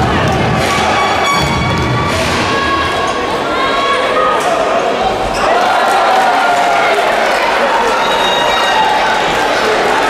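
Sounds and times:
spectators shouting: 0.0s - 10.0s.

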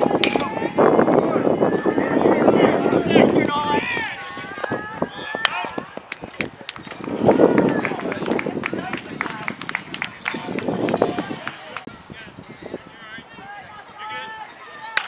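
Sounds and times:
players and spectators shouting: 0.0s - 15.0s.

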